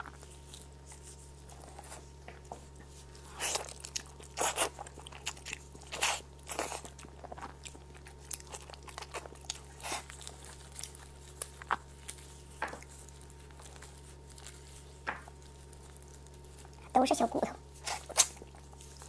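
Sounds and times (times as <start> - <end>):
person chewing meat: 0.0 - 16.9, 17.6 - 19.0.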